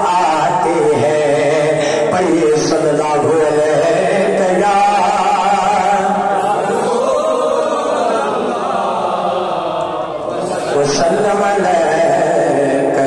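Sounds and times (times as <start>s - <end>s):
man singing into a microphone: 0.0s - 6.4s, 10.7s - 13.0s.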